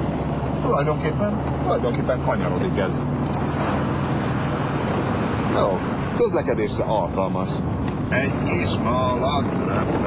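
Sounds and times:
car engine droning: 0:00.0 - 0:10.0
road and wind noise: 0:00.0 - 0:10.0.

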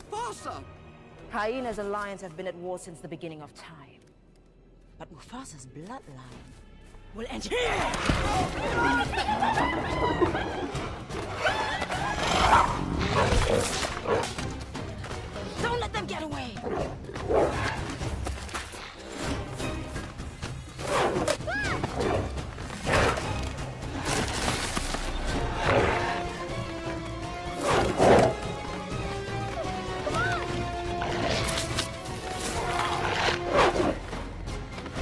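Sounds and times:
orchestral film score: 0:00.0 - 0:35.0.

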